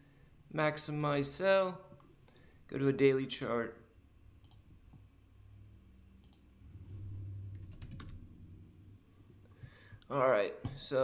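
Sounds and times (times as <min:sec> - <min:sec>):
low hum: 0:04.0 - 0:10.0
computer keyboard keystrokes: 0:07.6 - 0:08.2.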